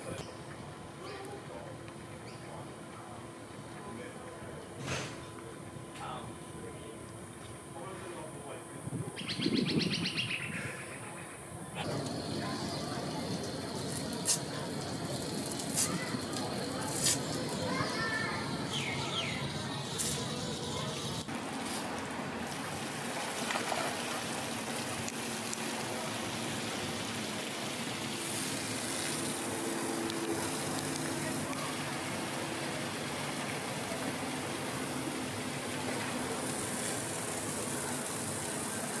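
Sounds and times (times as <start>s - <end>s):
faint voices murmuring: 10.4s - 21.3s, 30.0s - 39.0s
running water: 11.8s - 39.0s.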